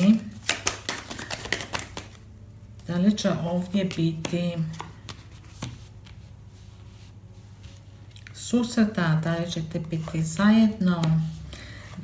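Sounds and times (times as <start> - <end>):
cards being shuffled: 0.0 - 2.2, 3.7 - 6.3.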